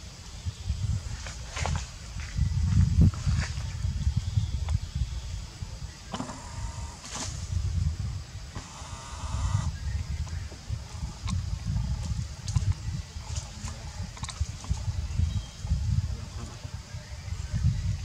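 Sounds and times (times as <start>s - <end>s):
steady low rumble: 0.0s - 18.0s.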